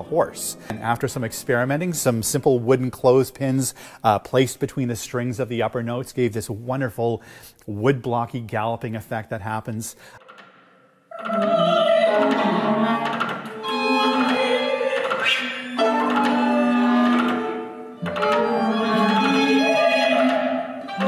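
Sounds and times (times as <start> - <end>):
classical string ensemble music: 0.0 - 2.4, 11.3 - 21.0.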